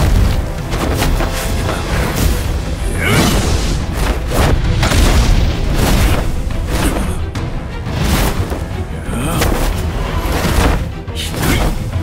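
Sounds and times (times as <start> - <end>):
dramatic music score: 0.0 - 12.0.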